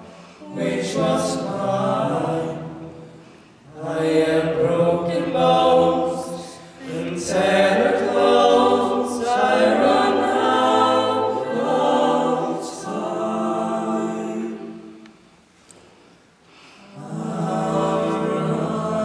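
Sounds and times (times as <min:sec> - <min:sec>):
a cappella group singing chords: 0:00.0 - 0:15.4, 0:16.7 - 0:19.0.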